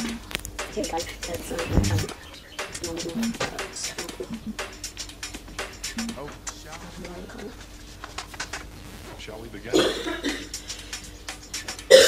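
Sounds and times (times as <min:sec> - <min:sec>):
woman coughing: 0:09.7 - 0:10.5.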